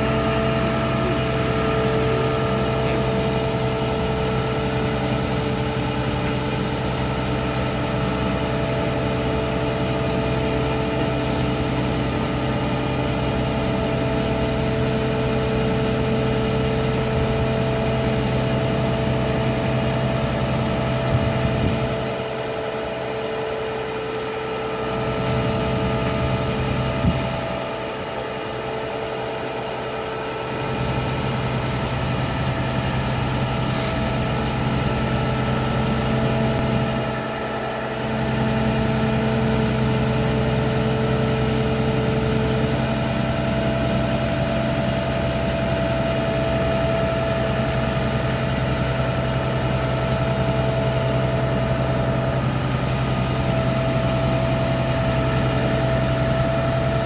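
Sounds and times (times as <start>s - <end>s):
heavy diesel engine running: 0.0s - 57.0s.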